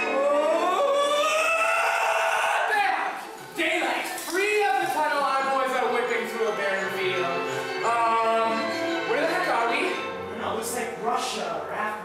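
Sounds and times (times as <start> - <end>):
young man screaming: 0.0 - 3.2.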